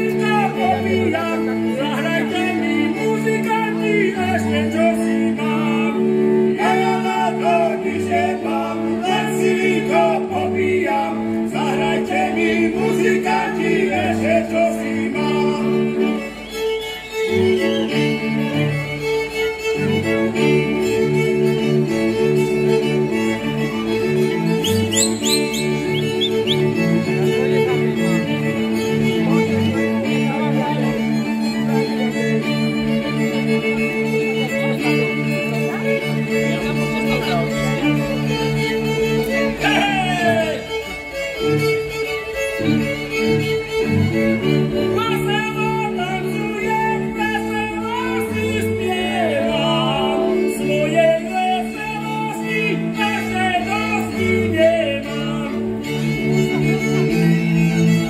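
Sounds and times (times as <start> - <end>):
man singing: 0.0 - 16.3, 39.6 - 40.7, 45.0 - 55.8
bowed bass strokes: 0.0 - 58.0
fiddles playing: 0.0 - 58.0.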